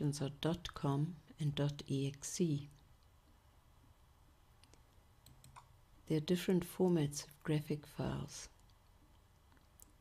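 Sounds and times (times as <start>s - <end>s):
computer mouse clicks: 4.6s - 5.7s.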